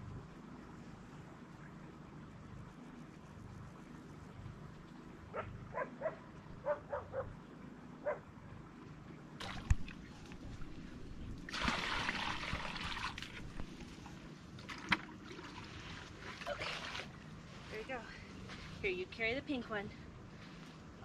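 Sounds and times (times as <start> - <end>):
dog barking faintly: 5.3 - 7.4
water pouring from a bucket: 9.4 - 10.7, 11.4 - 17.2.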